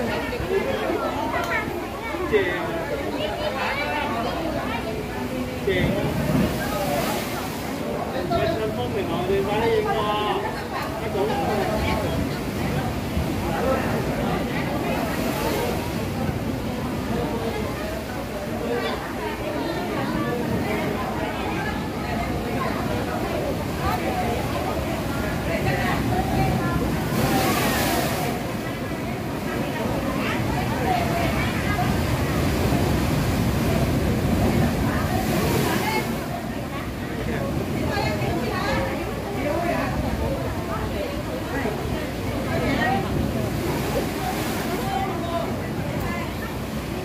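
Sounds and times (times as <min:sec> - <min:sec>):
faint voices: 0:00.0 - 0:47.0
people talking indistinctly: 0:00.0 - 0:47.0
sea waves breaking on rocks: 0:04.9 - 0:10.0, 0:10.9 - 0:47.0.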